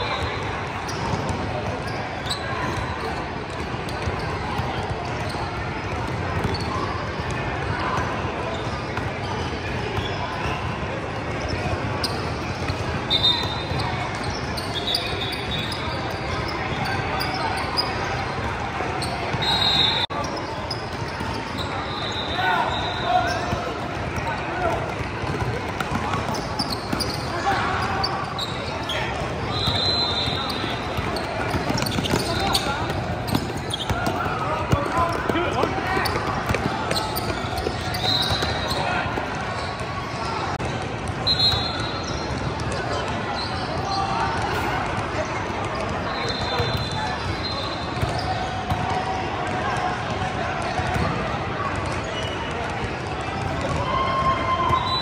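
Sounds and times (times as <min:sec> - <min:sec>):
sneakers squeaking: 0:00.0 - 0:55.0
voices echoing in hall: 0:00.0 - 0:55.0.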